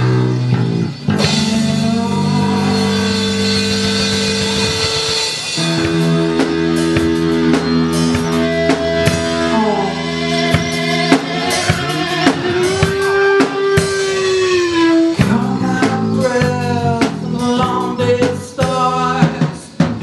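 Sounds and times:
rock band playing live: 0:00.0 - 0:20.0.

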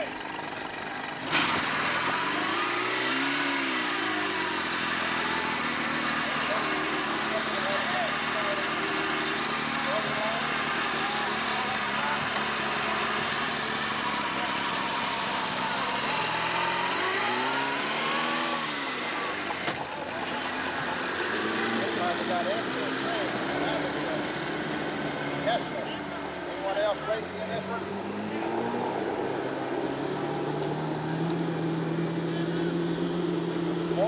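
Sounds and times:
outboard motors droning: 0:00.0 - 0:34.0
background voices talking: 0:03.8 - 0:34.0.

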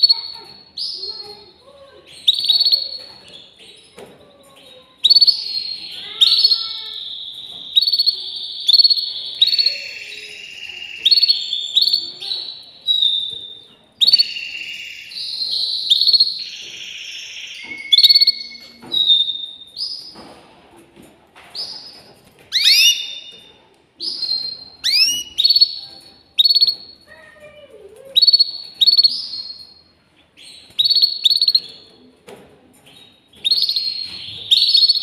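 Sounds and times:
canary singing trills: 0:00.0 - 0:20.2, 0:21.6 - 0:27.3, 0:27.9 - 0:32.1, 0:32.8 - 0:35.0.

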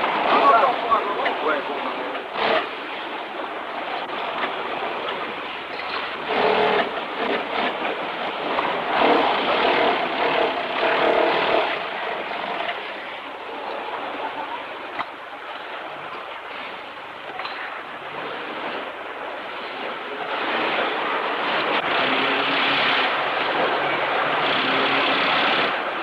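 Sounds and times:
assembly line machinery noise: 0:00.0 - 0:26.0.

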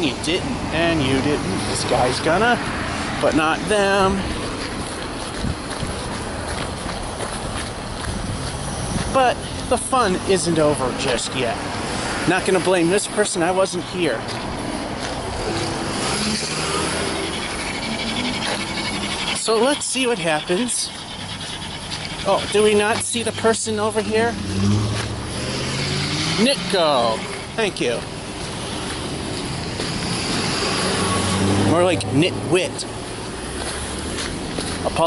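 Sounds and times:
cars driving past: 0:00.0 - 0:35.0.

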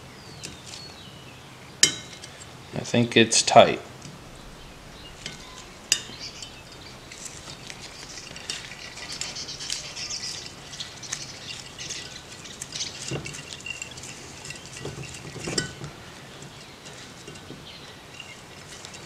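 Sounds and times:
light metallic scrapes and clinks: 0:01.8 - 0:02.5, 0:04.4 - 0:19.0.

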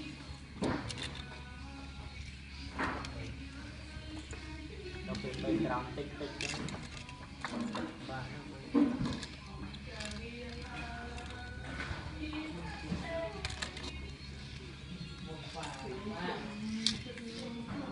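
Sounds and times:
music: 0:00.0 - 0:17.9
voices: 0:02.8 - 0:17.9.

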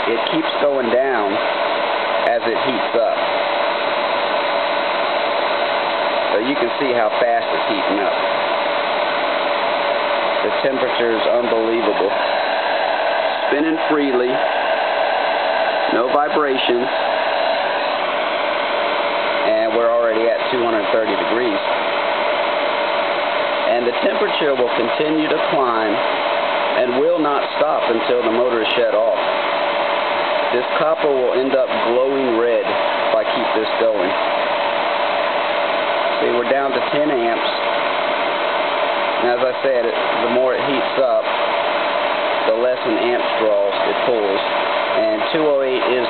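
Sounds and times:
electric motor whirring: 0:00.0 - 0:46.0.

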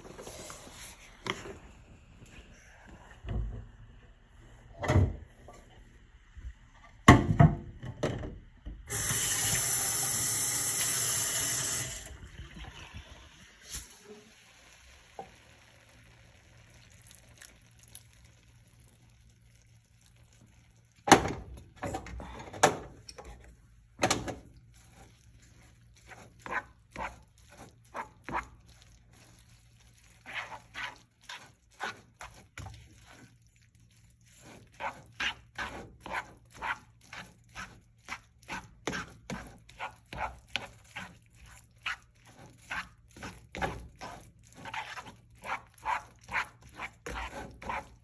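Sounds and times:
spatula scraping frying pan: 0:30.1 - 0:48.0.

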